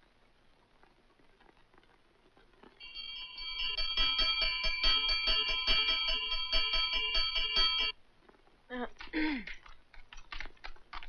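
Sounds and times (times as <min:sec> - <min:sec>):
chiming film background music: 0:02.8 - 0:08.0.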